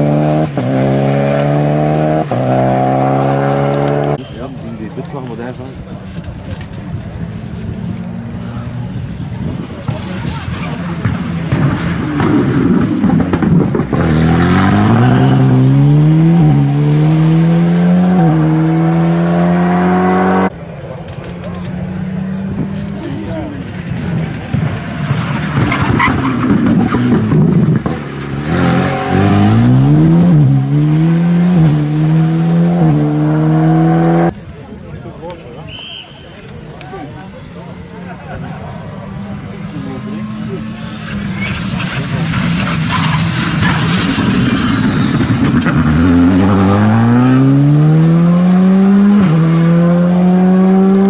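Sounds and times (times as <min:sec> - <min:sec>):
rally car accelerating through gears: 0:00.0 - 0:04.2, 0:10.9 - 0:20.5, 0:24.2 - 0:34.4, 0:39.9 - 0:51.0.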